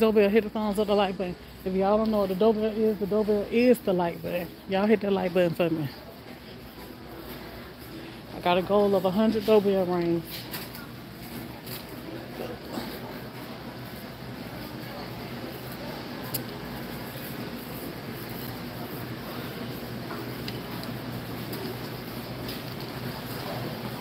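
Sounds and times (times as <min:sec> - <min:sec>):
low hum of store background: 0:00.0 - 0:24.0
shopping cart rolling on concrete: 0:00.0 - 0:24.0.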